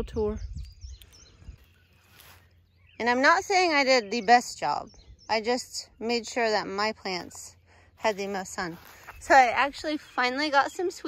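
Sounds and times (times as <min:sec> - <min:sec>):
faint bird chirps: 0:00.0 - 0:11.0
soft rustle: 0:01.0 - 0:02.7, 0:08.0 - 0:10.2.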